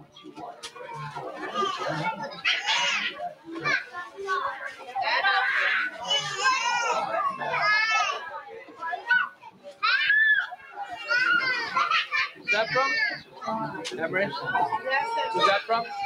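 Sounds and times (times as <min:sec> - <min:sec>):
children chattering and calling out: 0:00.0 - 0:16.0.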